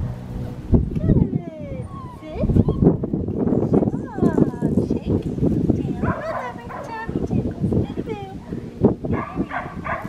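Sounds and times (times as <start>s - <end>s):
low rumbling noise: 0.0s - 10.0s
puppy whimpering: 1.6s - 3.0s.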